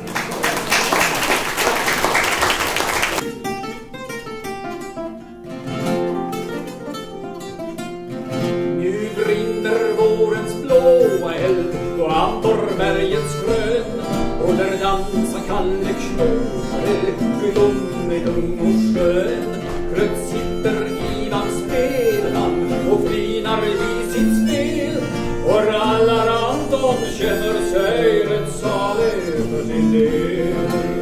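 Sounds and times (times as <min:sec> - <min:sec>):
acoustic guitar picking: 0:03.1 - 0:31.0
person singing: 0:08.7 - 0:31.0.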